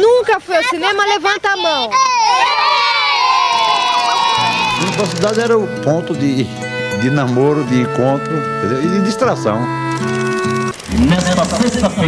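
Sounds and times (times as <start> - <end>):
children shouting and cheering: 1.5 - 5.2.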